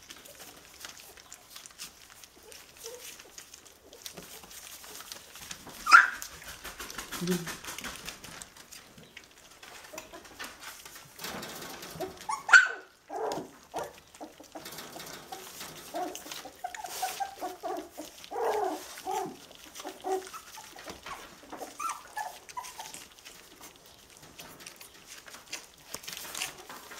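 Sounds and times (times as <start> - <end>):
puppies rustling on newspaper: 0.0 - 26.9
puppies whimpering and yipping: 0.2 - 6.4, 12.0 - 24.1
puppy yelp: 2.4 - 3.4, 5.8 - 6.4, 12.2 - 14.5, 15.3 - 23.2.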